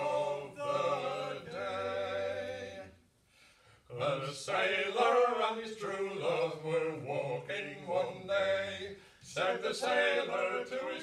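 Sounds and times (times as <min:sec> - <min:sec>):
men singing unaccompanied: 0:00.0 - 0:03.0, 0:03.9 - 0:11.0.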